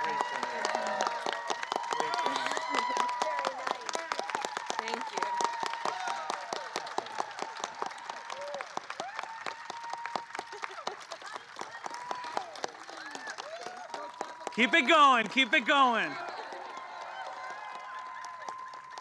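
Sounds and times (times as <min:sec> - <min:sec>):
audience clapping: 0:00.0 - 0:19.0
voices calling out: 0:14.6 - 0:16.6.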